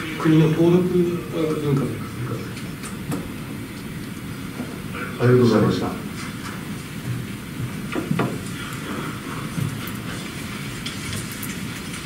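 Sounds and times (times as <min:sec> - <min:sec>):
steady hiss and hum: 0:00.0 - 0:12.0.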